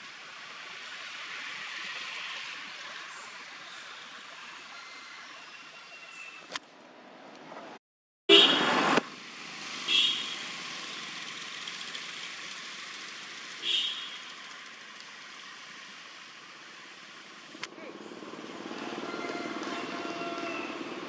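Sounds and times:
outdoor background noise: 0.0s - 21.0s.

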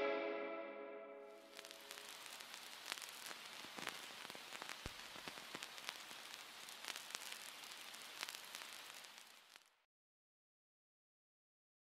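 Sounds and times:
faint crackling hiss: 1.3s - 9.9s.

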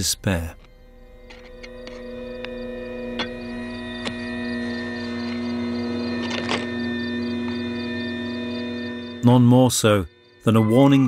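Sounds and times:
droning hum of held tones: 0.0s - 11.0s.

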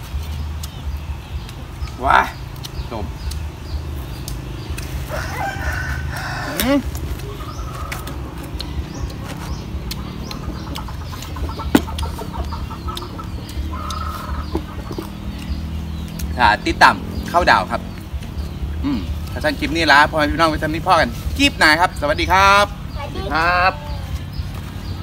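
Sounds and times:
chickens calling: 0.0s - 25.0s.

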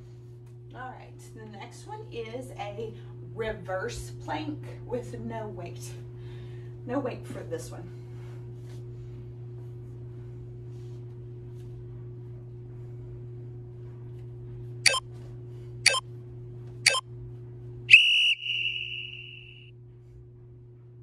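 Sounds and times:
short timer beeps: 17.9s - 19.7s
long high timer beep: 18.0s - 19.7s.

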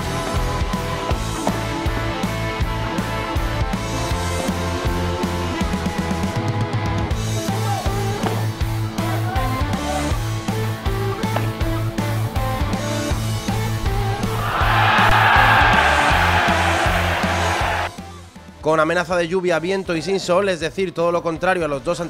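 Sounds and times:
rock music: 0.0s - 18.6s
loud rushing noise: 14.1s - 17.9s.

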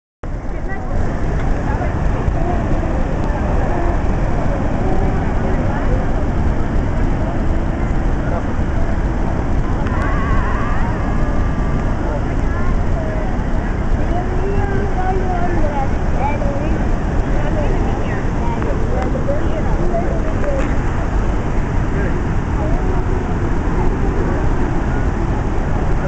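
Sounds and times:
waterfall rushing: 0.3s - 26.0s.

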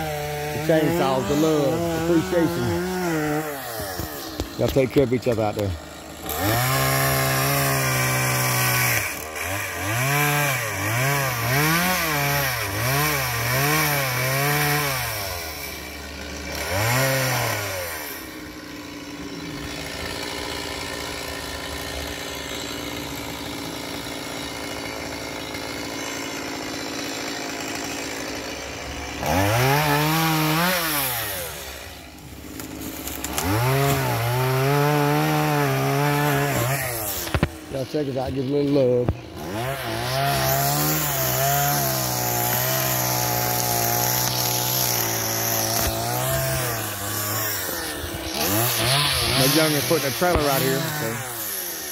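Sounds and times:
chainsaw revving and idling: 0.0s - 51.9s.

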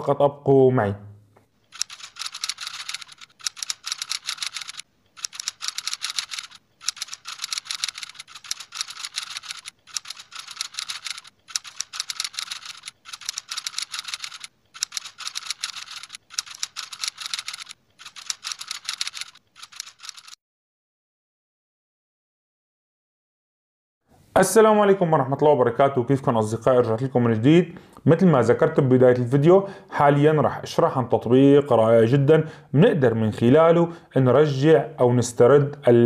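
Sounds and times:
keyboard typing clicks: 1.7s - 20.4s.

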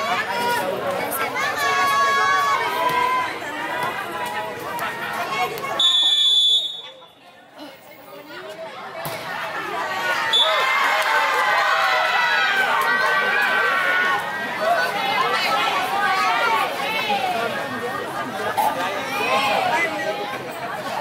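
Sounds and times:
crowd voices: 0.0s - 21.0s
referee's whistle blasts: 5.8s - 7.0s, 10.3s - 10.6s.

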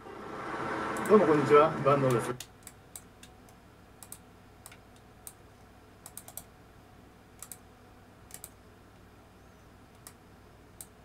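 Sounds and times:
computer keyboard keystrokes: 4.0s - 5.4s, 6.0s - 6.5s, 7.4s - 7.6s, 8.3s - 8.6s.

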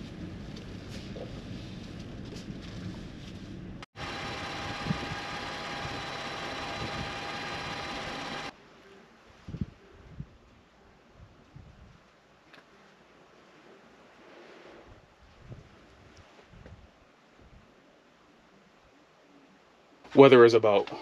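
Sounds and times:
mechanical hum with high whine: 0.0s - 11.9s.

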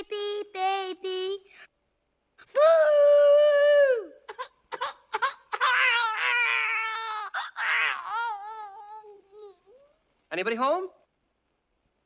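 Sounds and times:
cartoon child wailing: 5.2s - 9.2s.

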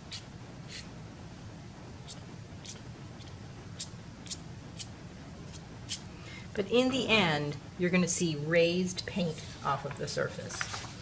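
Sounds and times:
palette knife scraping paint: 0.1s - 0.9s.

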